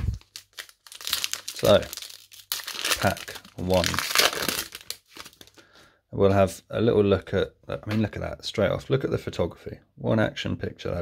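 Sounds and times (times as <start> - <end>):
foil wrapper crinkling and tearing: 0.0 - 5.6.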